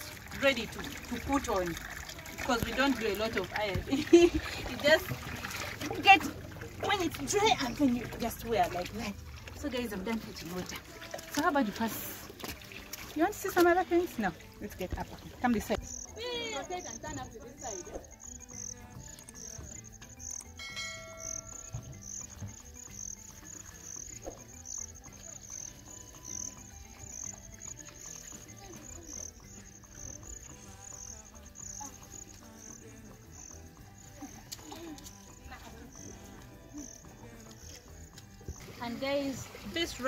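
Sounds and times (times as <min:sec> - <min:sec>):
insects chirping: 0:00.0 - 0:40.0.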